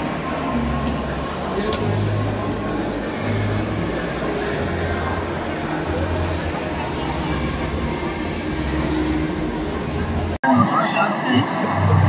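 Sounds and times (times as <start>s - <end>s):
exhibition hall din: 0.0s - 12.0s.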